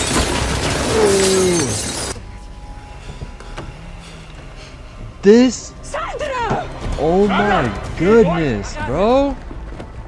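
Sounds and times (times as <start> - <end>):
glass shattering: 0.0 - 2.2
loud crash: 0.0 - 2.2.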